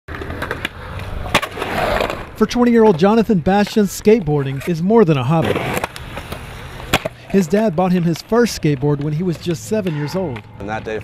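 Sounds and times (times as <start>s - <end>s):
skateboard clacks: 0.1s - 4.7s
skateboard wheels rolling on concrete: 0.1s - 11.0s.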